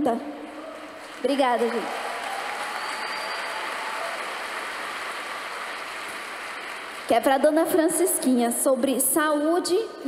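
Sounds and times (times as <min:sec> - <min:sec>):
audience applauding: 0:00.6 - 0:07.3.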